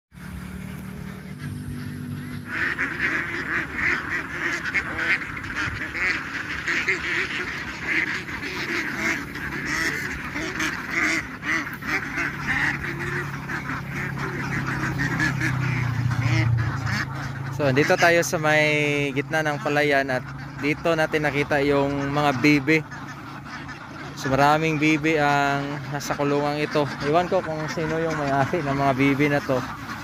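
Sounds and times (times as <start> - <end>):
flock of ducks quacking: 0.2 - 30.0.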